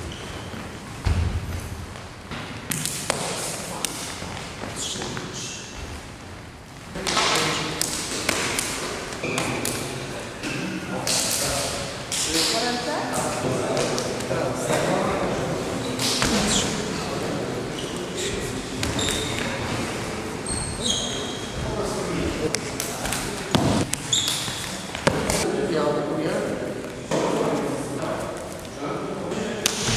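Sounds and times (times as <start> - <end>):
people talking: 7.0 - 8.5, 9.2 - 23.9, 25.1 - 29.9.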